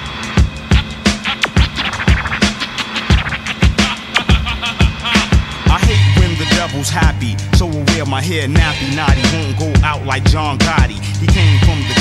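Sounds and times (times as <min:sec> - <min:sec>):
boom-bap drum beat: 0:00.0 - 0:12.0
turntable scratching: 0:00.0 - 0:12.0.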